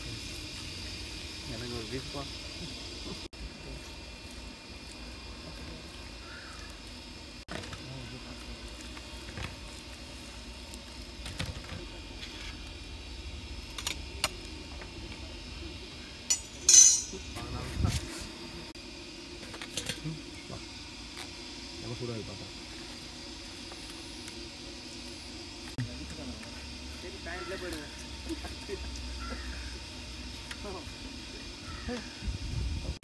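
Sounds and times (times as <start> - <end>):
metal bowl clinking and knocking: 16.3 - 17.2.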